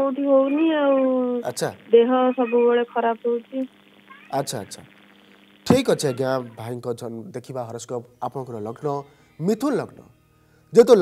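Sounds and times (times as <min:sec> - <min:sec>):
man speaking: 0:01.4 - 0:01.8, 0:04.3 - 0:04.9, 0:05.7 - 0:10.0.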